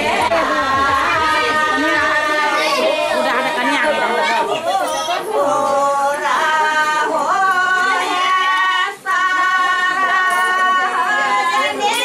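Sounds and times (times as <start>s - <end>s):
crowd chatter: 0.0s - 12.0s
women singing unaccompanied: 0.0s - 12.0s.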